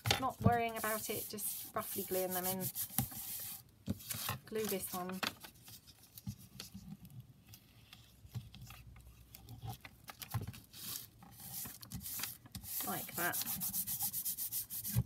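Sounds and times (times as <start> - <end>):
paper rubbing and rustling: 0.2 - 7.6, 10.4 - 15.0.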